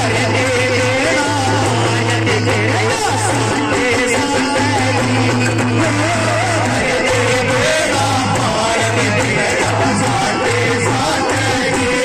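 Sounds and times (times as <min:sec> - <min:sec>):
man singing through microphone: 0:00.0 - 0:12.0.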